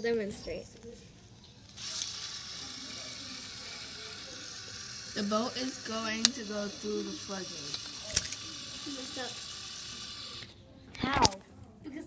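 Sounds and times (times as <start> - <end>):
small electric motor whirring: 1.7 - 10.6.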